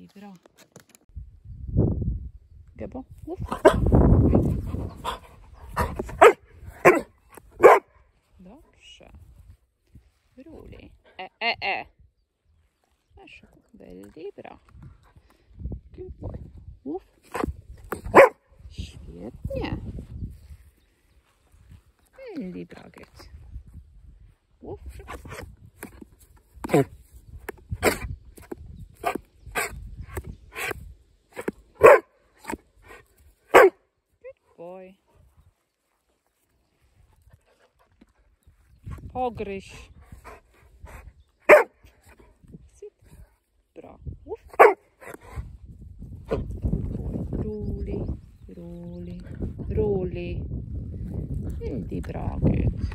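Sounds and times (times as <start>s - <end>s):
dog barking: 5.8s - 7.9s, 18.1s - 18.4s, 31.8s - 32.1s, 33.5s - 33.8s, 41.5s - 41.8s, 44.6s - 44.8s.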